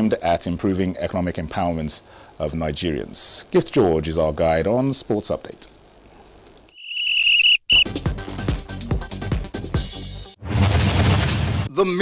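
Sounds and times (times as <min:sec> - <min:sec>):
referee's whistle blast: 0:06.8 - 0:08.0
music with a beat: 0:07.8 - 0:10.0.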